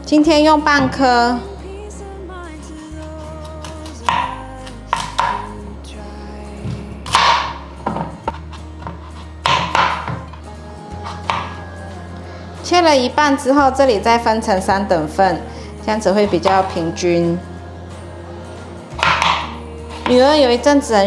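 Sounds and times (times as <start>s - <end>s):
background music: 0.0s - 21.0s
knife cutting pumpkin: 2.9s - 5.6s, 7.0s - 7.6s, 8.3s - 10.4s, 11.0s - 11.7s, 16.2s - 17.0s, 18.9s - 20.5s.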